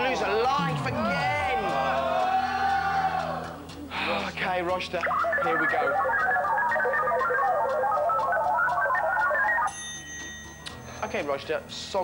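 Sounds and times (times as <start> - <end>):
fast electronic beeps: 5.0 - 9.8.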